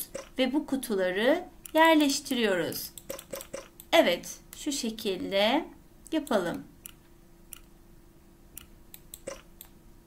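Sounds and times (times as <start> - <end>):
faint steady hum: 0.0 - 10.0
computer mouse clicks: 2.9 - 3.9, 6.1 - 7.7, 8.6 - 9.8.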